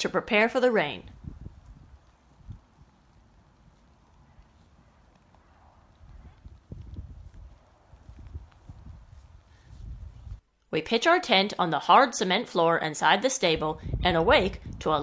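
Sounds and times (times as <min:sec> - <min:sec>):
horse moving on grass: 0:01.0 - 0:10.6.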